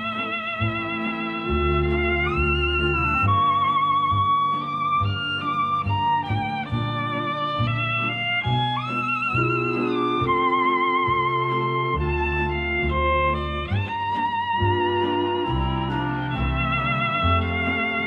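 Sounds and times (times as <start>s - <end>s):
orchestral accompaniment: 0.0s - 18.0s
solo violin melody: 0.0s - 18.0s.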